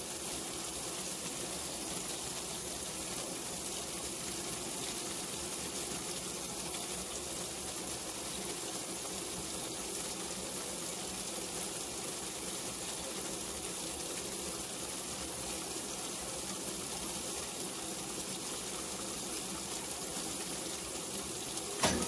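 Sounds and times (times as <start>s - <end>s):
water gushing into washing machine: 0.0s - 22.0s.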